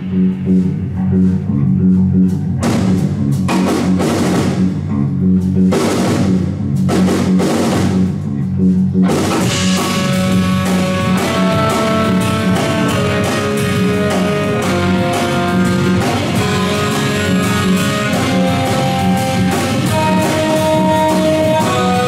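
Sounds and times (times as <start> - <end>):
drum kit: 0.0 - 22.0
electric bass line: 0.0 - 22.0
electric guitar: 0.0 - 22.0.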